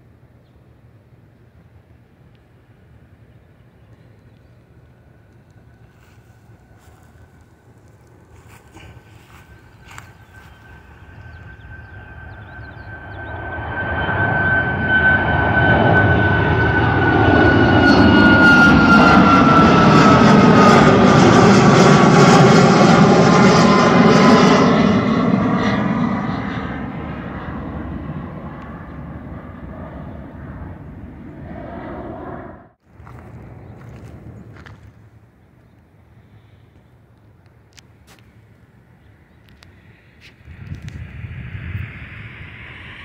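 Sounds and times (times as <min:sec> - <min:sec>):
jet airliner passing overhead: 0:02.5 - 0:43.0
high engine whine dropping in pitch: 0:04.7 - 0:34.8, 0:40.0 - 0:43.0.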